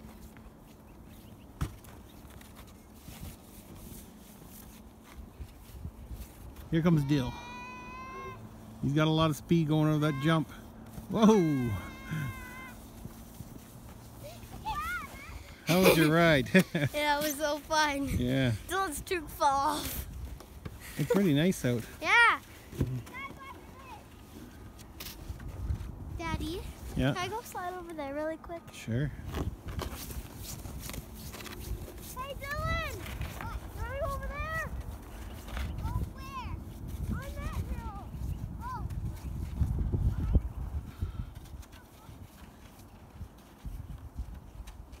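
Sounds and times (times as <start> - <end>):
distant children's voices: 6.8 - 8.6, 11.2 - 12.9, 14.1 - 15.6, 22.0 - 24.6
children calling out: 7.0 - 8.6, 11.1 - 12.8.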